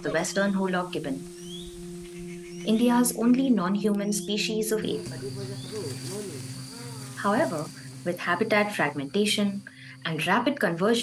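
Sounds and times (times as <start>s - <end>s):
gibbon hooting: 0.0s - 10.1s
high insect drone: 0.0s - 11.0s
low held music tone: 0.0s - 11.0s.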